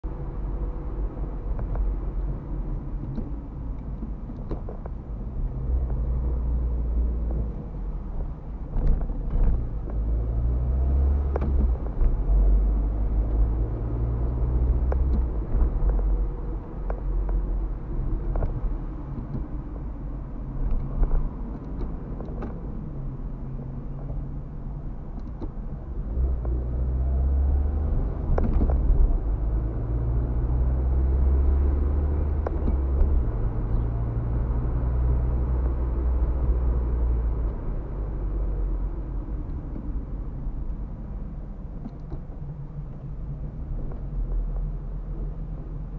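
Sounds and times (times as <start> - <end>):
engine and road rumble: 0.0 - 45.9.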